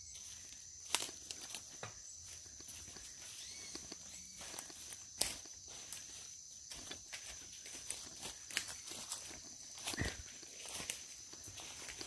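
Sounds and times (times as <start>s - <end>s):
footsteps on leaf litter: 0.0s - 12.0s.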